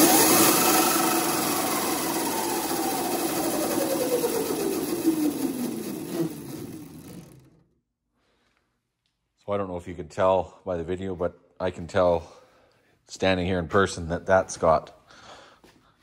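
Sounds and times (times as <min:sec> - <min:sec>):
chain and drive noise: 0:00.0 - 0:07.6
electric motor whine: 0:00.0 - 0:07.6.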